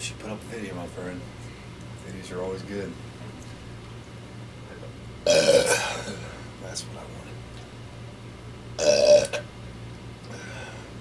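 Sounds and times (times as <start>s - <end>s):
man burping: 5.2s - 6.4s, 8.8s - 9.4s.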